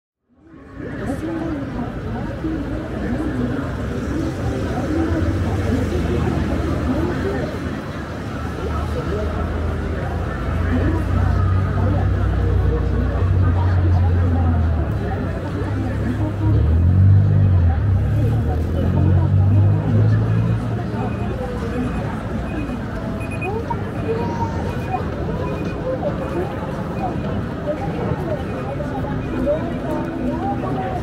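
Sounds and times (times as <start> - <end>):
pedestrians talking: 0.2 - 31.0
people chattering: 0.2 - 31.0
road traffic rumble: 0.3 - 31.0
vehicle engine: 0.9 - 31.0.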